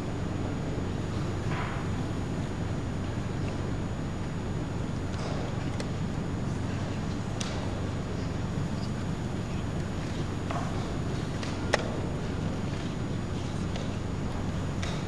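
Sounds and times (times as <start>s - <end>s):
steady room hum: 0.0s - 15.0s.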